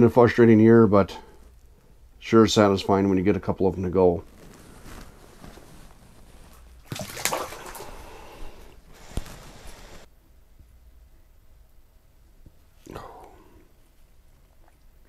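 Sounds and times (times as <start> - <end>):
fish splashing in water: 6.8 - 9.2.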